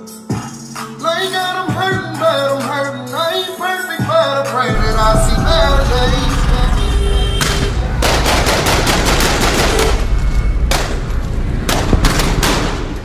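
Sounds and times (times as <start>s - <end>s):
music with heavy bass: 0.0s - 13.0s
rapid gunfire: 7.4s - 10.1s, 11.7s - 13.0s.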